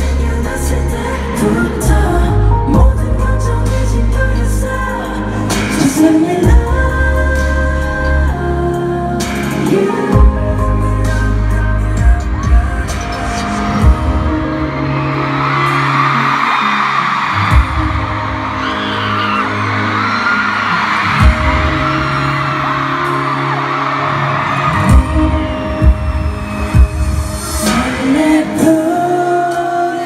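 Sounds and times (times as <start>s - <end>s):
crowd screaming and cheering: 0.0s - 30.0s
loud live concert music: 0.0s - 30.0s.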